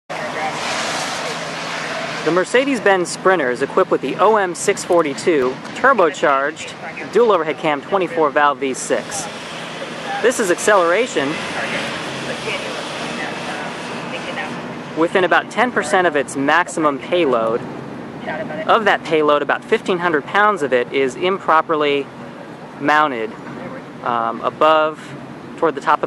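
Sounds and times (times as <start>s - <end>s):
outdoor noise: 0.0s - 26.0s.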